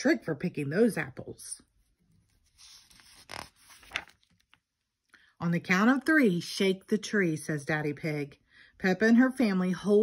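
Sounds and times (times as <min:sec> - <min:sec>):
paper page turning: 0:01.8 - 0:04.7.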